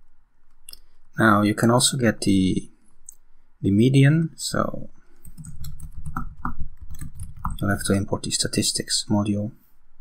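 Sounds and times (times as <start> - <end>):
typing on computer keyboard: 5.2 - 7.8.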